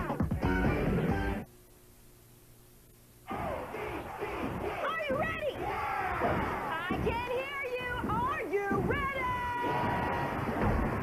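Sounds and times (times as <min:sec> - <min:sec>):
noisy background mix: 0:00.0 - 0:11.0.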